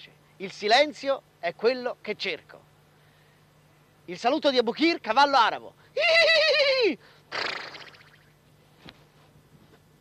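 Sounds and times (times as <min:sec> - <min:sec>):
man imitating horse blowing: 0:06.0 - 0:08.1.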